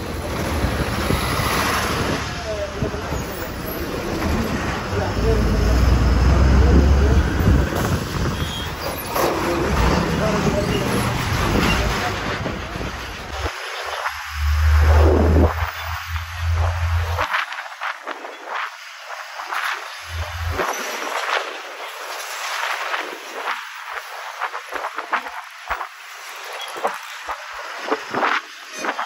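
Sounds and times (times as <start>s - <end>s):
faint voices: 0.0s - 26.0s
bus engine hum: 0.0s - 29.0s
road noise: 0.0s - 29.0s.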